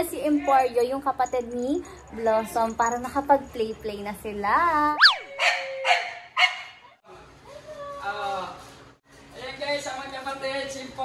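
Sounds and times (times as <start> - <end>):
dog barks: 5.0 - 6.8
dog yelp: 5.0 - 6.9.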